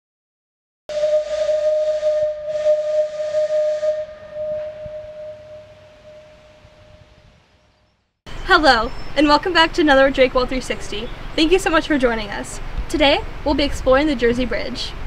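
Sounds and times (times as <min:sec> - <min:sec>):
steam whistle blowing: 0:00.9 - 0:07.3.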